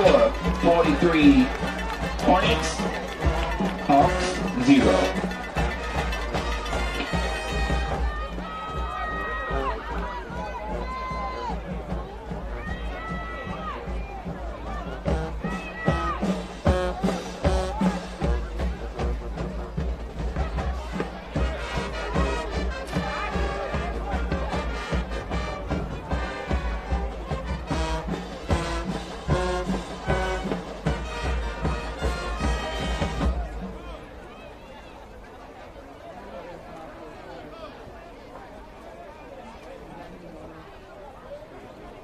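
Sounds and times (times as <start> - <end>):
busy drumbeat: 0.0 - 34.0
brass band music with horns: 0.0 - 35.1.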